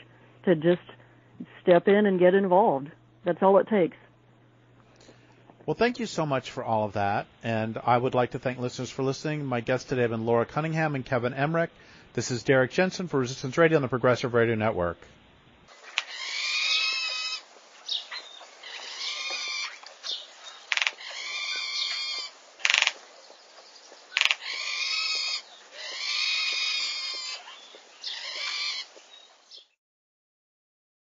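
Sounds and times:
bird harsh calls: 15.7s - 29.7s.

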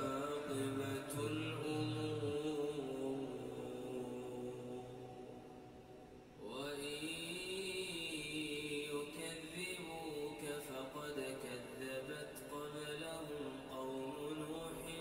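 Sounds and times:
man chanting melodically: 0.0s - 5.4s, 6.4s - 15.0s.

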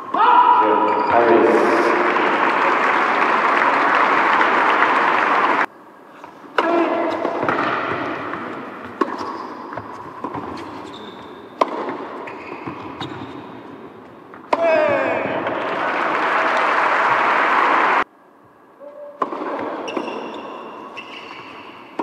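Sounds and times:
crowd applauding: 1.6s - 5.7s, 15.4s - 18.0s
racket hitting tennis ball: 6.6s - 15.7s, 19.2s - 22.0s.

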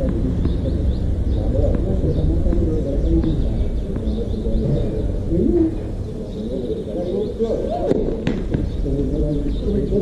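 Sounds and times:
distant voices: 0.0s - 10.0s
doves cooing: 0.0s - 10.0s
low wind rumble: 0.0s - 10.0s.

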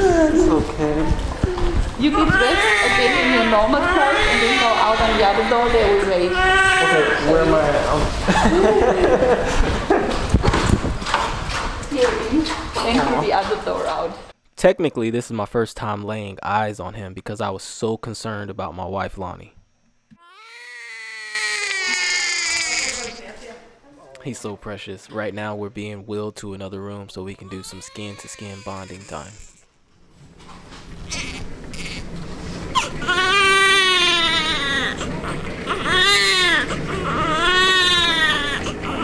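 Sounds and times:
newborn baby crying: 1.6s - 7.6s, 20.2s - 23.3s, 27.4s - 29.6s, 31.1s - 32.1s, 32.8s - 39.0s.

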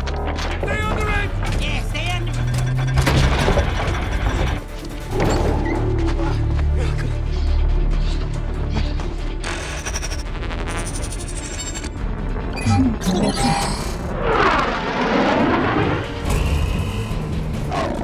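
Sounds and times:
music: 0.0s - 18.0s.

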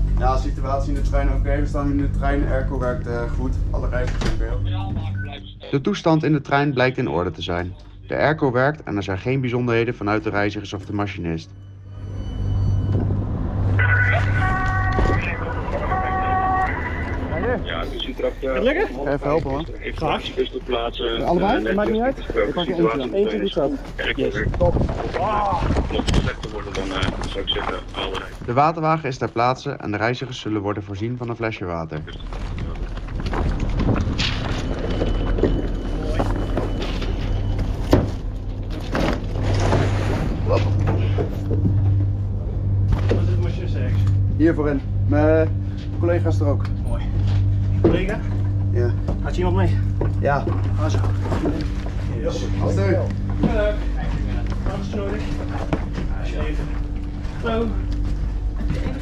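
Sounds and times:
vehicle running with low hum: 0.0s - 8.4s, 9.0s - 28.5s, 32.1s - 59.0s
indistinct voices: 0.0s - 29.4s
low mechanical hum: 31.7s - 59.0s.

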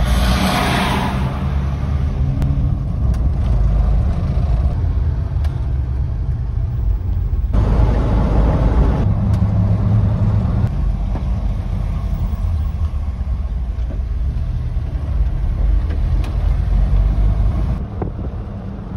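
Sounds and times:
engine and road rumble: 0.0s - 18.9s.

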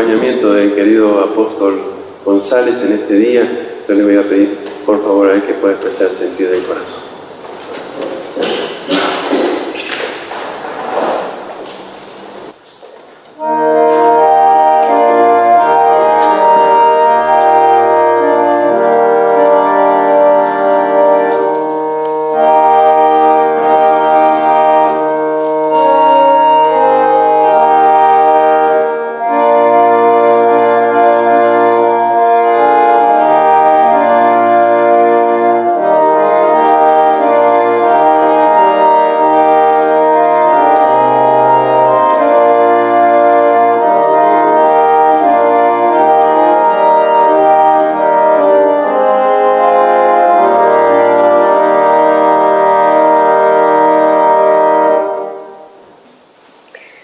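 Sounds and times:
organ playing sustained chords: 0.0s - 57.0s
indistinct noise: 55.0s - 57.0s.

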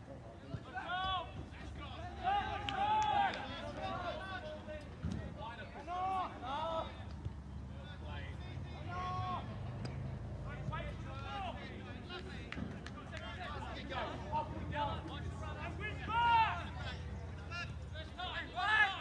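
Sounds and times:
voices shouting: 0.7s - 4.6s, 13.3s - 19.0s.

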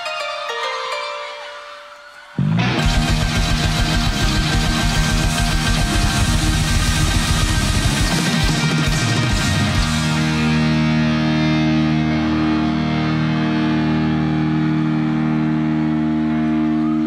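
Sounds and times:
held final guitar chord ringing: 0.7s - 16.7s
rock band drums and guitars: 2.4s - 13.5s.

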